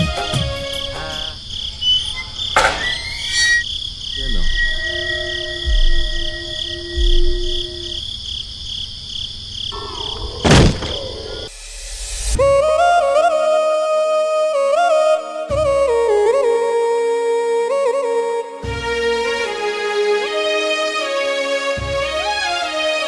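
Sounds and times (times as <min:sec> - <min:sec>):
crickets chirping: 0:00.1 - 0:12.3
held synth notes: 0:04.1 - 0:08.0
musical interlude: 0:04.2 - 0:08.0
low booms: 0:09.8 - 0:11.6.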